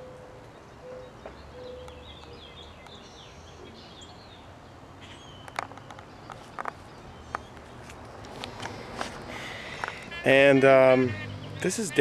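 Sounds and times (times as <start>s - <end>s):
small birds chirping: 0.6s - 12.0s.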